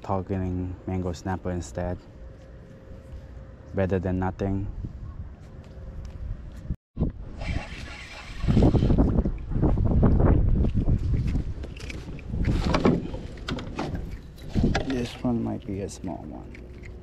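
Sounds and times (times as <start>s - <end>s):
wind buffeting microphone: 4.4s - 16.1s.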